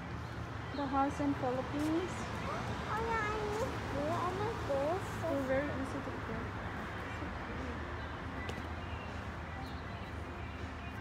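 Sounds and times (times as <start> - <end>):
child making wordless vocal sounds: 2.9 - 3.8.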